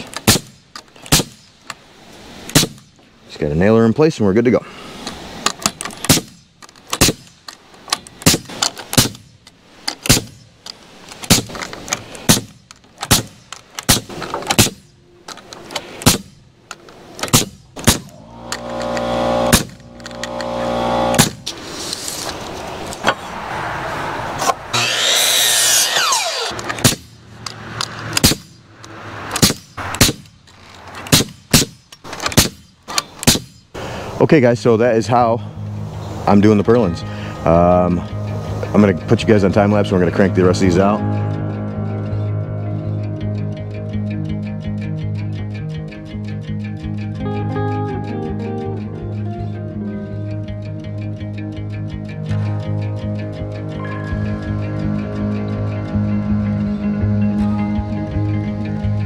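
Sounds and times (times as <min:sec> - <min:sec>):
nail gun firing into wood: 0:00.2 - 0:01.5, 0:02.5 - 0:02.9, 0:06.0 - 0:07.4, 0:08.2 - 0:09.3, 0:10.0 - 0:10.4, 0:11.2 - 0:11.6, 0:12.3 - 0:14.8, 0:16.0 - 0:16.3, 0:17.2 - 0:20.4, 0:21.1 - 0:21.4, 0:24.8 - 0:27.1, 0:28.2 - 0:28.5, 0:29.3 - 0:30.3, 0:31.1 - 0:33.6
steady hum: 0:17.5 - 0:22.9.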